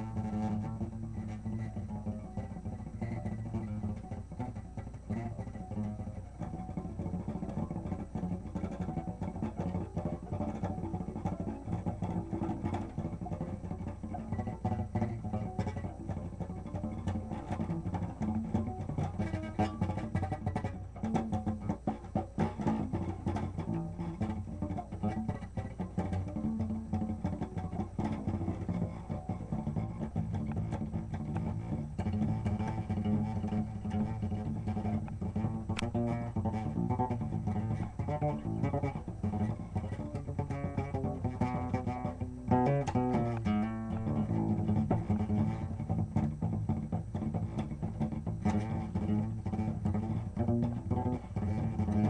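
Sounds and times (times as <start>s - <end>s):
acoustic guitar plucked notes: 0.0s - 52.0s.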